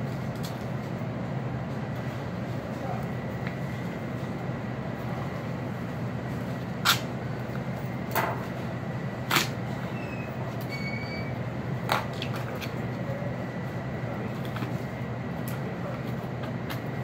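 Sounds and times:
ventilation machinery hum: 0:00.0 - 0:17.0.

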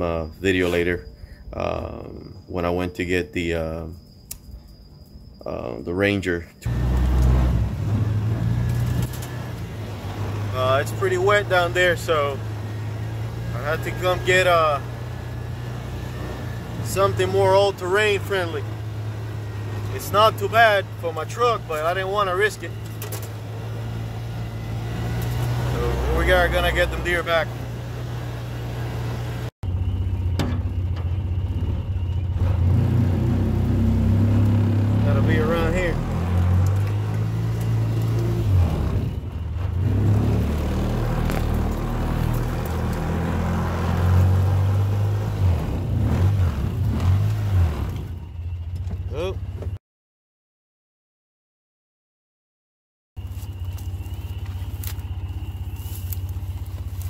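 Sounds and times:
sharp click: 0:04.2 - 0:04.5
utility vehicle engine running: 0:06.6 - 0:49.8, 0:53.2 - 0:57.0.

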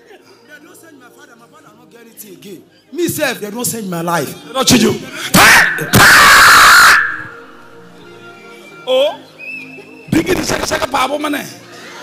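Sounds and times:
distorted shout through a microphone: 0:05.4 - 0:07.4.

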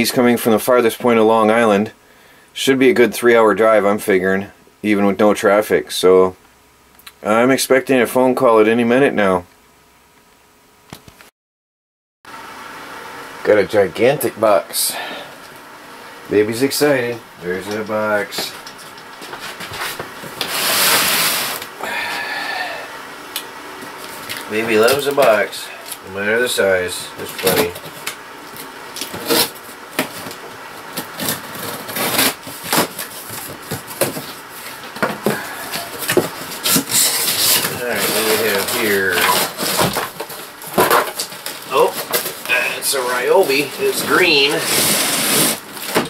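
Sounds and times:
scratchy scraping: 0:19.2 - 0:21.6, 0:35.8 - 0:39.9, 0:41.8 - 0:45.6
cardboard rustling: 0:23.9 - 0:46.0
cardboard flaps tearing: 0:28.9 - 0:46.0
rasping against cardboard box: 0:35.2 - 0:40.1, 0:43.6 - 0:45.7.

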